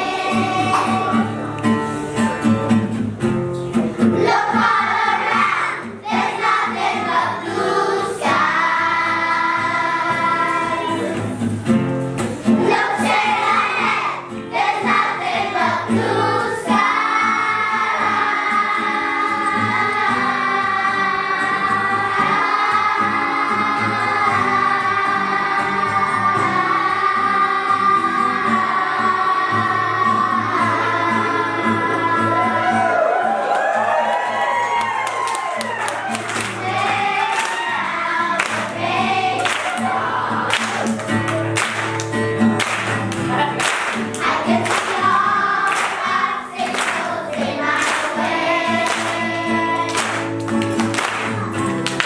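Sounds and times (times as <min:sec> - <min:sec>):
children's choir singing: 0:00.0 - 0:01.5, 0:03.9 - 0:11.5, 0:12.3 - 0:34.3, 0:36.0 - 0:41.0, 0:43.4 - 0:51.6
hand clapping: 0:34.7 - 0:37.7, 0:38.3 - 0:52.0.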